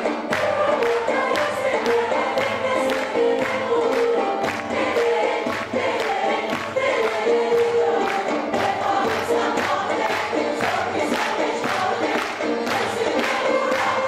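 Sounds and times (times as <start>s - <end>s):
mixed choir singing folk song: 0.0s - 14.0s.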